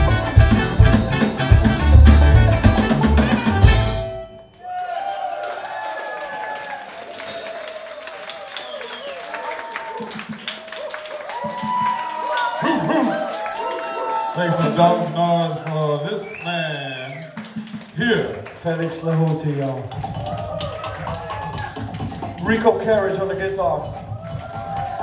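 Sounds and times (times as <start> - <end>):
live band playing: 0.0 - 4.6, 7.0 - 7.8, 16.6 - 25.0
audience cheering and shouting: 4.6 - 18.5, 19.7 - 25.0.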